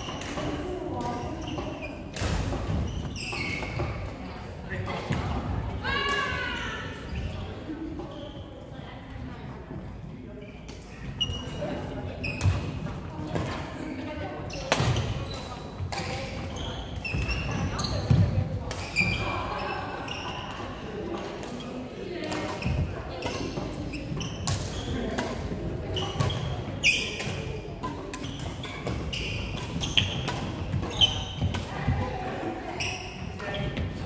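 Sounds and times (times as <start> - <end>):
rackets hitting shuttlecock: 0.0 - 4.2, 14.5 - 19.3, 22.2 - 32.1
players' voices: 0.0 - 34.0
shoes squeaking on wooden floor: 2.8 - 4.0, 28.2 - 31.5.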